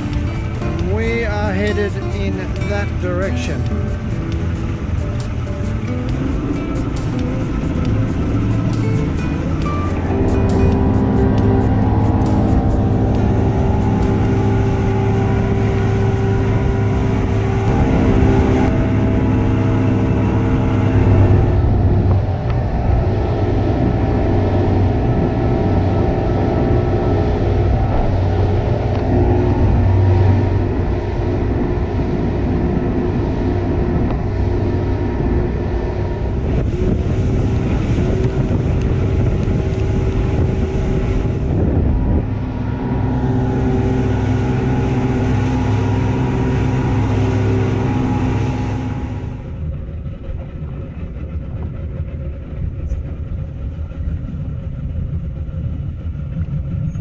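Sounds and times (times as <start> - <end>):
jazz music: 0.0 - 20.1
boat engine running: 0.0 - 57.0.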